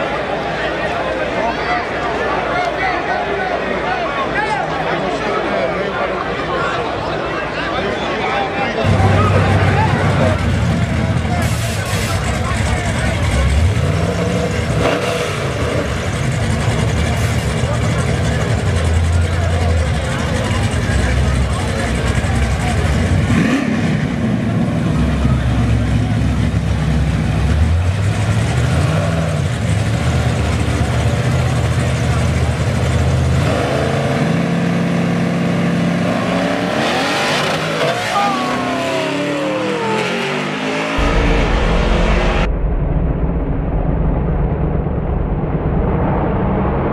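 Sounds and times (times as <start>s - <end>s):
voices: 0.0s - 26.9s, 36.8s - 42.5s
car engine revving: 8.8s - 45.4s.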